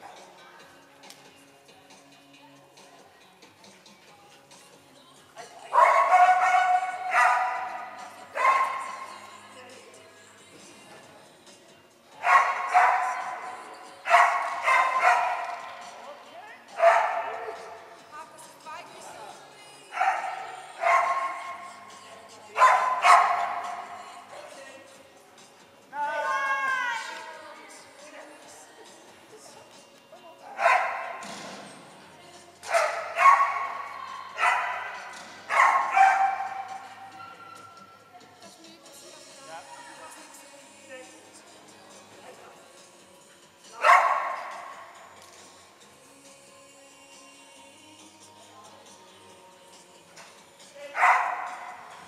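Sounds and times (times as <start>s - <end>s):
dog barking in a hall: 5.7s - 9.3s, 12.2s - 16.0s, 16.7s - 18.0s, 19.9s - 21.9s, 22.5s - 24.3s, 30.4s - 31.3s, 32.6s - 38.0s, 43.7s - 45.0s, 50.8s - 52.0s.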